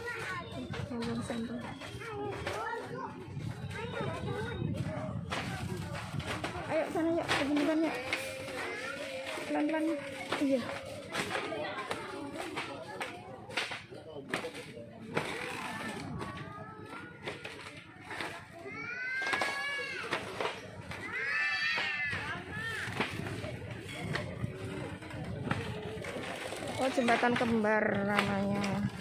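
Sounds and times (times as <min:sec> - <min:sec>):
children's voices: 0:00.0 - 0:13.6, 0:15.2 - 0:27.2
children's high calls: 0:20.8 - 0:23.0.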